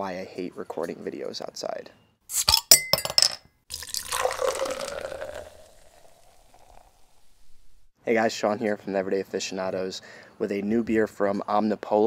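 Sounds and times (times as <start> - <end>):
beer pouring into ringing glass: 3.7 - 7.7.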